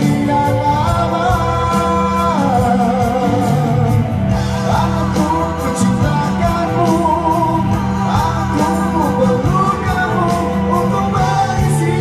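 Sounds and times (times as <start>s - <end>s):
amplified backing music: 0.0s - 12.0s
man singing into a microphone: 0.0s - 12.0s.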